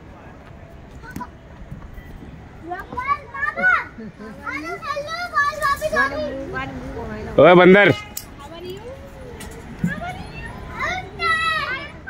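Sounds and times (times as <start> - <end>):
young child talking: 2.6 - 6.6, 8.4 - 12.0.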